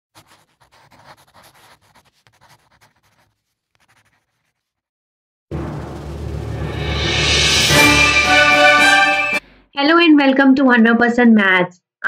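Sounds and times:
chalk scratching on chalkboard: 0.1s - 4.8s.

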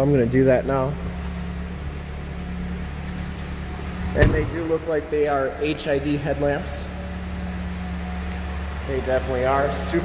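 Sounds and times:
car engine idling: 0.0s - 10.0s.

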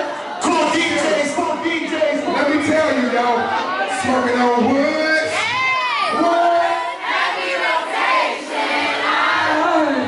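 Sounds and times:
audience shouting and yelling: 0.0s - 10.0s.

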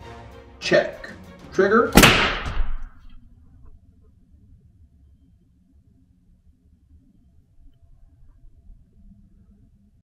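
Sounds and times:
paintball marker shot crack: 2.0s - 2.9s.

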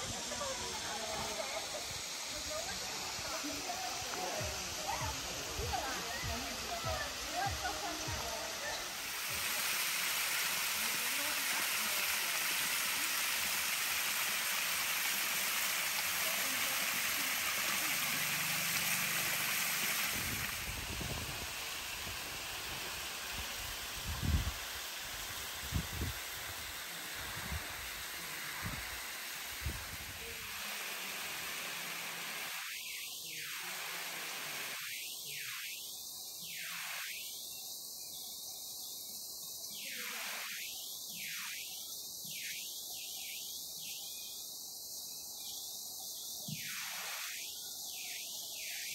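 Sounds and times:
waterfall rushing: 0.0s - 32.6s.

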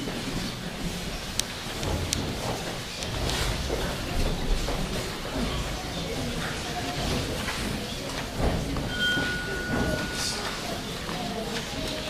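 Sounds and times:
audience rustling: 0.0s - 12.0s.

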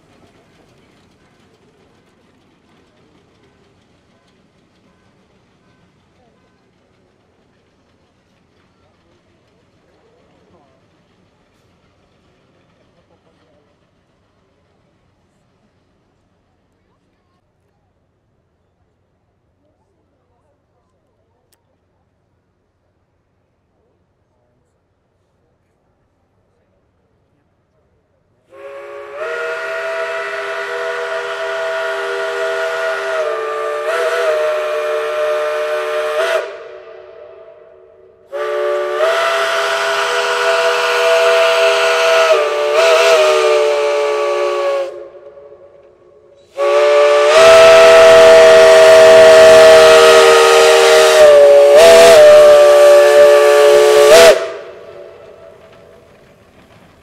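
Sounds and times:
steam locomotive whistle blasts: 28.5s - 55.6s.

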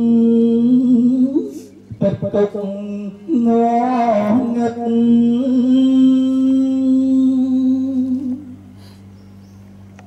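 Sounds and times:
faint low steady hum: 0.0s - 10.0s.

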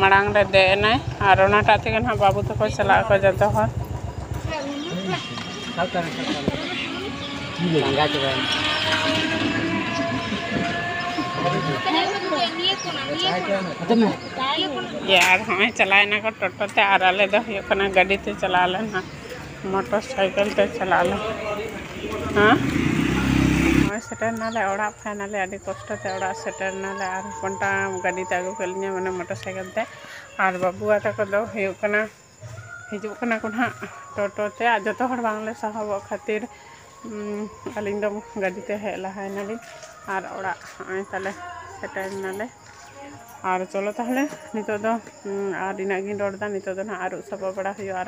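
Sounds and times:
woman talking: 0.0s - 3.8s, 11.8s - 13.2s, 14.3s - 21.4s, 23.9s - 48.0s
train rumble: 0.0s - 12.6s
people's voices: 0.0s - 48.0s.

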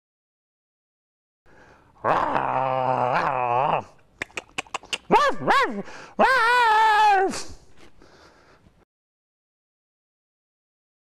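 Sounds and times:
sharp clicks: 4.2s - 5.1s.

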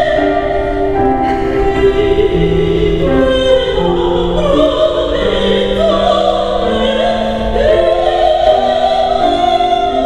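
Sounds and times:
grand piano: 0.0s - 10.0s
woman singing opera: 0.0s - 10.0s.

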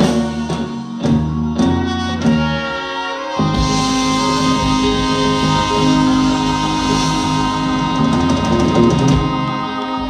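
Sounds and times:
accented band and drum hits: 0.0s - 10.0s
soul band organ and horns chord: 0.0s - 10.0s.

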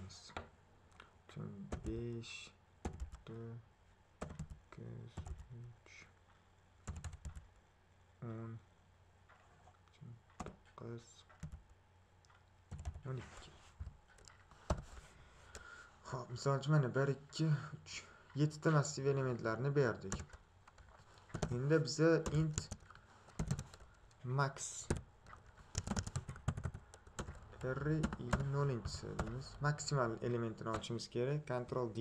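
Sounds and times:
computer keyboard keystrokes: 4.2s - 4.6s, 6.8s - 7.4s, 11.3s - 11.7s, 12.7s - 13.0s, 22.2s - 23.9s, 24.9s - 29.4s.

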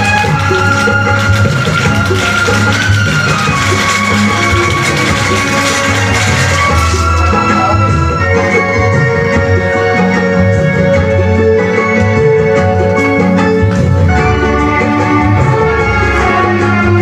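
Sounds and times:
music from vinyl record: 0.0s - 17.0s.

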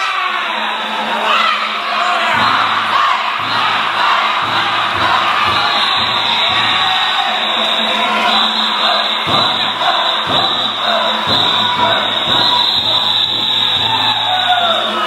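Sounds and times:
crowd shouting and calling: 0.0s - 15.0s
festival music: 1.7s - 15.0s
drum beats: 2.3s - 15.0s.

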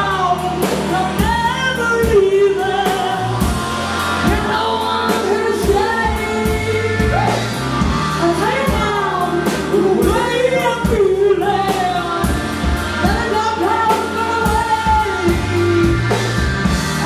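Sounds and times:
electric bass guitar: 0.0s - 17.0s
woman singing lead vocal: 0.0s - 17.0s.

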